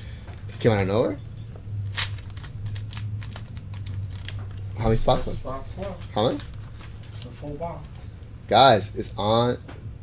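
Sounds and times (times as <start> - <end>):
foil pack tearing and crinkling: 1.8 - 7.9.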